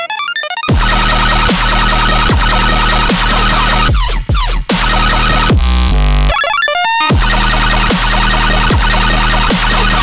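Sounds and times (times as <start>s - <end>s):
bright synth notes stepping down: 0.7s - 3.9s, 6.3s - 10.0s
heavy distorted synth bass: 0.7s - 10.0s.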